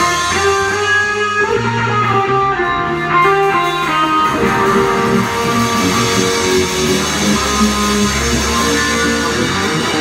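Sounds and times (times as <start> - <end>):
electric guitar rock playing: 0.0 - 10.0
low held notes: 0.0 - 10.0.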